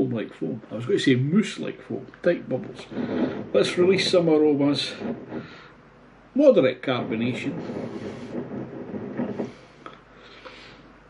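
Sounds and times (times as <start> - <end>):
glass base grinding on table: 2.4 - 5.8, 6.9 - 9.9.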